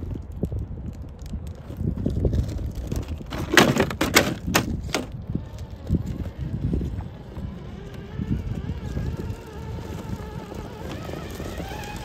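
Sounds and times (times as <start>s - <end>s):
electric motor and gears whining: 4.7s - 12.0s.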